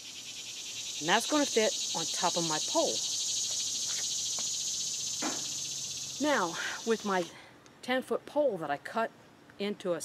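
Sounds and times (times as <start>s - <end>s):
high-pitched insect chorus: 0.0s - 7.3s.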